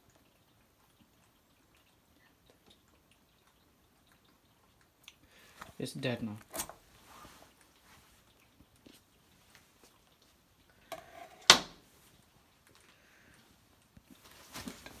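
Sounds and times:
faint handling noises: 5.5 - 15.0.

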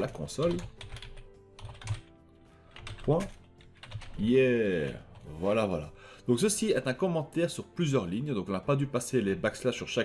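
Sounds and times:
computer keyboard typing: 0.0 - 5.4.

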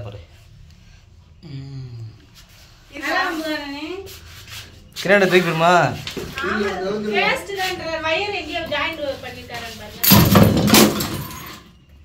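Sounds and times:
faint scraping: 2.0 - 10.0.

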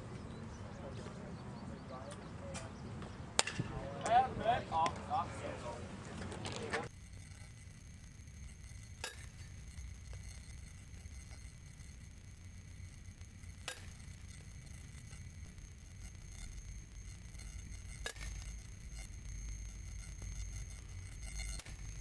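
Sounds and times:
bat cracking baseball: 3.4 - 3.7.

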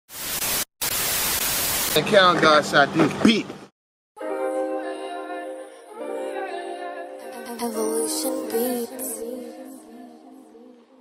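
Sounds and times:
static hiss: 0.1 - 2.0.

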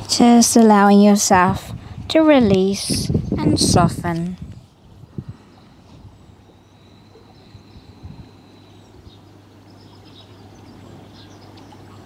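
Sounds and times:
low steady hum: 0.0 - 12.0
high whistling birdsong: 2.8 - 12.0.

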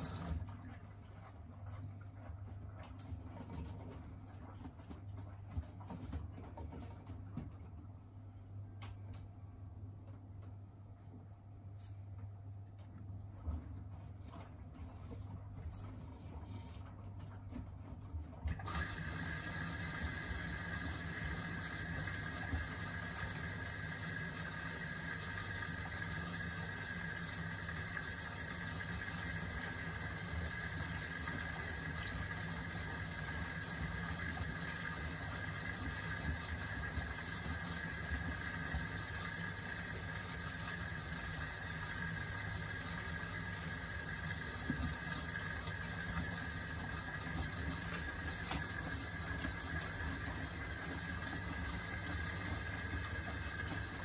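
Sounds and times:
water and laundry sloshing in drum: 0.0 - 8.1, 11.8 - 54.0
washing machine whine: 0.0 - 54.0.

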